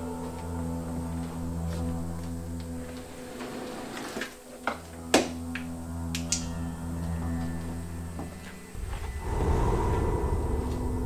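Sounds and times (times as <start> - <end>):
horror music drone: 0.0 - 11.0.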